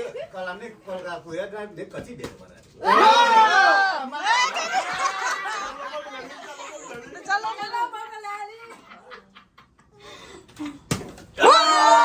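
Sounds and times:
people chattering and laughing: 0:00.0 - 0:00.6, 0:02.8 - 0:10.2.

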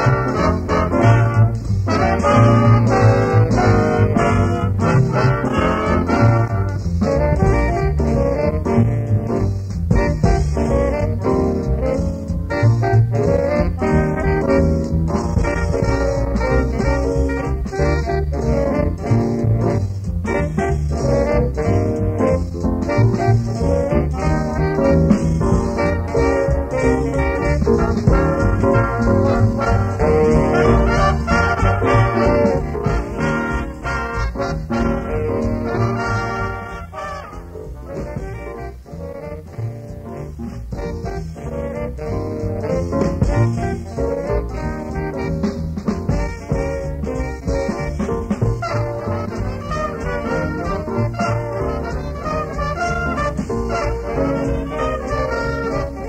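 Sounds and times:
small jazz band playing: 0:00.0 - 0:56.0.

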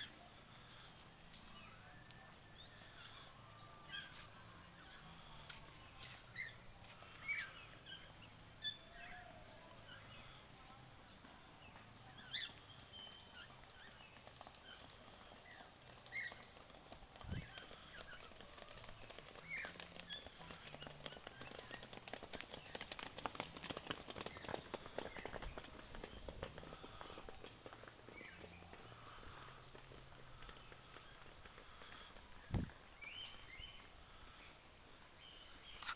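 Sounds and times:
birds chirping: 0:00.0 - 0:35.9
rapid patter of faint clicks: 0:13.5 - 0:32.7.

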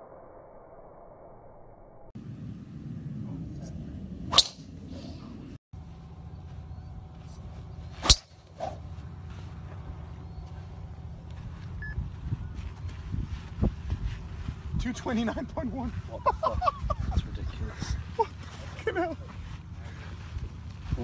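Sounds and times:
golf club striking ball: 0:08.0 - 0:08.8.

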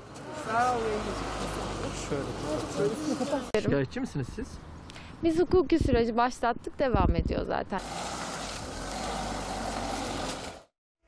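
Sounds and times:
hiss of traffic: 0:07.8 - 0:10.6
engine rumble: 0:07.8 - 0:10.7.

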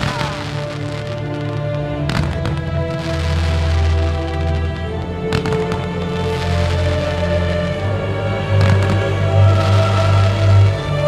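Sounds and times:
fireworks bangs: 0:00.0 - 0:07.8, 0:08.4 - 0:11.0
music playing: 0:00.0 - 0:11.0.

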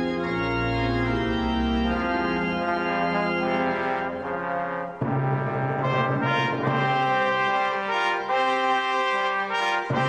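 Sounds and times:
instrumental music of held chords: 0:00.0 - 0:10.0.

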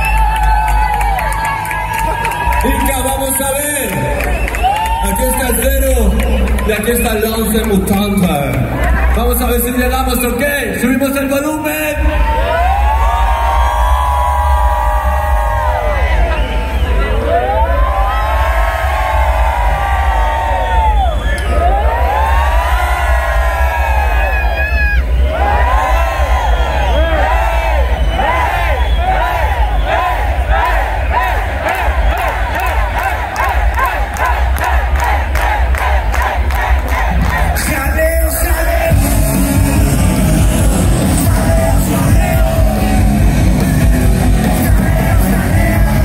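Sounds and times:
crowd shouting: 0:12.0 - 0:46.0
steady low drone: 0:38.9 - 0:46.0.

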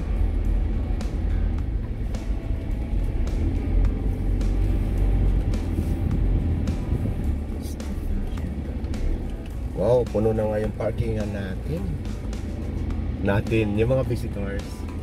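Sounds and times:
background music: 0:00.0 - 0:15.0
car engine and tyres rumbling: 0:00.0 - 0:15.0.

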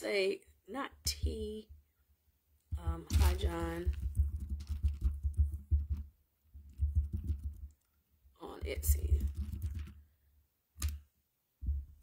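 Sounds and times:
fingers typing: 0:03.1 - 0:06.0, 0:06.7 - 0:07.9, 0:08.8 - 0:10.0.

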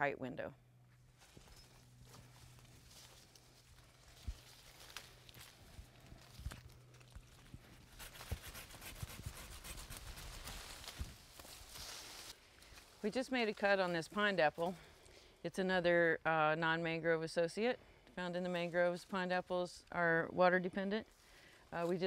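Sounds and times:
leaves and twigs rustling: 0:01.0 - 0:15.0
hand saw cutting branch: 0:07.8 - 0:11.0.

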